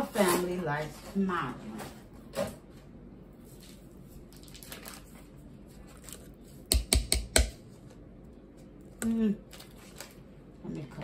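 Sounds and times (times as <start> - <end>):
masher knocking against metal pot: 6.7 - 7.6.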